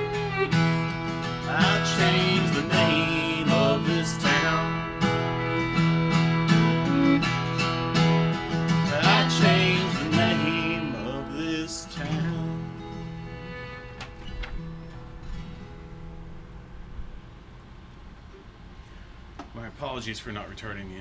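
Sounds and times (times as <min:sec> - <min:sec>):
fiddle bowing a melody: 0:00.0 - 0:14.9
acoustic guitar strumming: 0:00.0 - 0:17.2.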